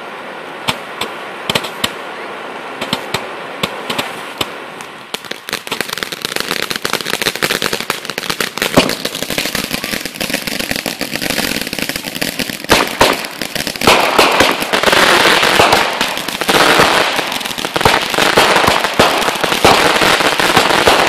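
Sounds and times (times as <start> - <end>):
firework bangs: 0.6 - 2.0, 2.7 - 21.0
fireworks popping and crackling: 0.6 - 2.0, 2.8 - 21.0.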